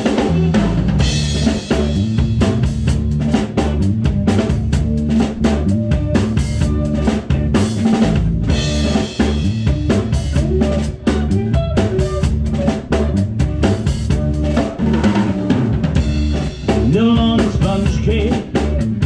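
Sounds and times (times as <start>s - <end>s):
drum kit beat: 0.0s - 19.0s
electric bass: 0.0s - 19.0s
electric guitar: 0.0s - 19.0s.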